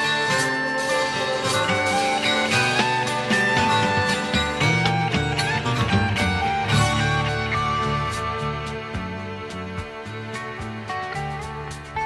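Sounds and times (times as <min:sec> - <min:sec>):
rock band instrumental: 0:00.0 - 0:12.0.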